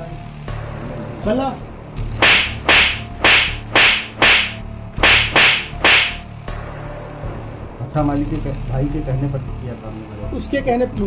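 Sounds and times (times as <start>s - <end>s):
sharp lashing strikes: 2.2s - 6.3s.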